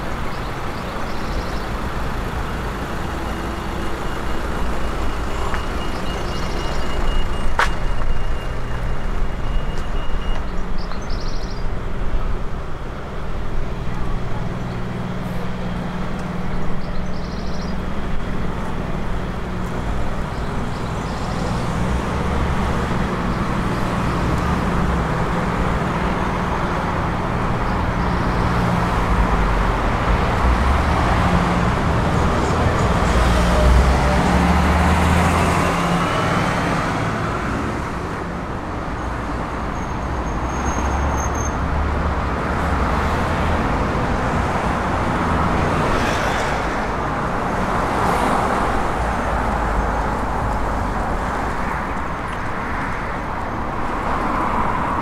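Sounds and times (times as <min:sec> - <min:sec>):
vehicles passing on street: 0:00.0 - 0:55.0.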